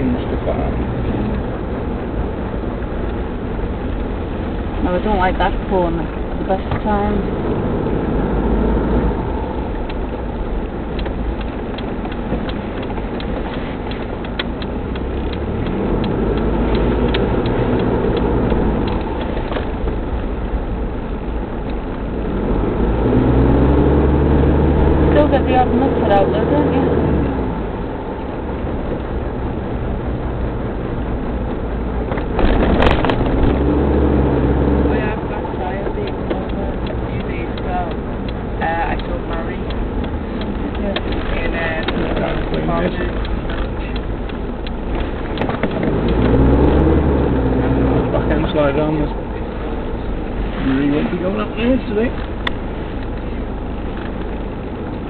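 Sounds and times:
car engine accelerating: 0:00.0 - 0:55.0
road noise: 0:00.0 - 0:55.0.

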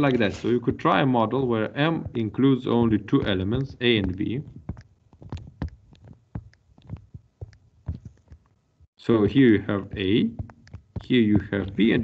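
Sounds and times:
stylus tapping on tablet: 0:02.9 - 0:08.4, 0:09.9 - 0:12.0.

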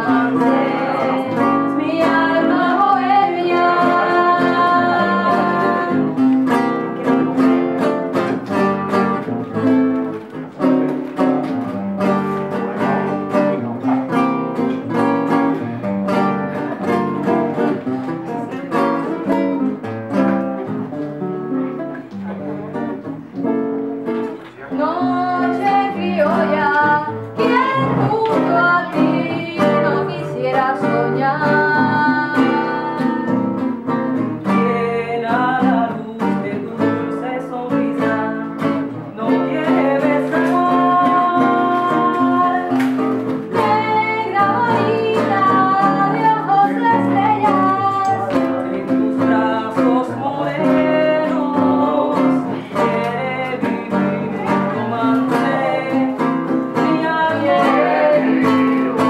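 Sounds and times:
woman singing: 0:00.0 - 0:07.5, 0:24.7 - 0:59.0
acoustic guitar strummed and picked: 0:00.0 - 0:59.0.

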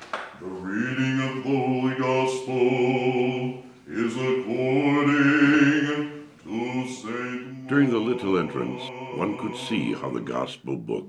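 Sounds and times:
man chanting on one pitch: 0:00.4 - 0:11.0.

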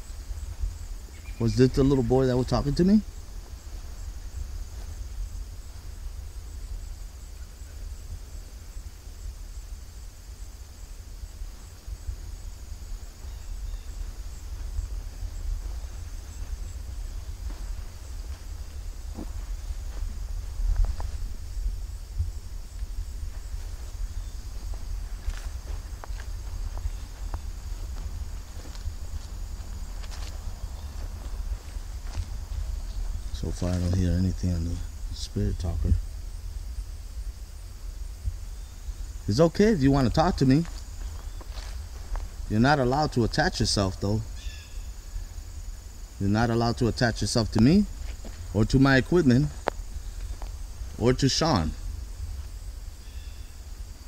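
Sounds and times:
high insect drone: 0:00.0 - 0:54.0
footsteps in grass: 0:00.1 - 0:06.5, 0:11.5 - 0:34.4, 0:38.6 - 0:46.2, 0:47.4 - 0:51.0.

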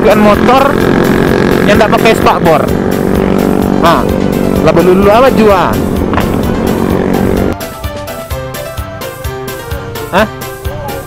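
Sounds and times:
motorcycle engine running: 0:00.0 - 0:11.0
music with steady beat: 0:02.6 - 0:11.0.

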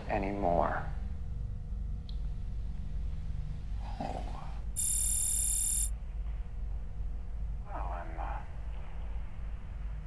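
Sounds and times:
steady low hum: 0:00.0 - 0:10.0
shrill electronic tone: 0:04.8 - 0:05.9.

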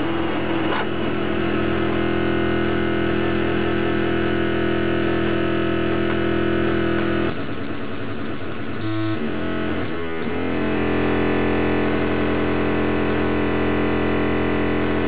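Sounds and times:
experimental electronic drone: 0:00.0 - 0:15.0.

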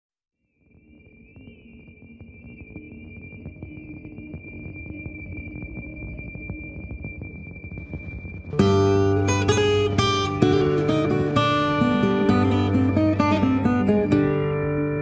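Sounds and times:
steady high whistling tone: 0:00.4 - 0:15.0
sampled drone: 0:00.5 - 0:15.0
held low notes: 0:01.2 - 0:15.0.

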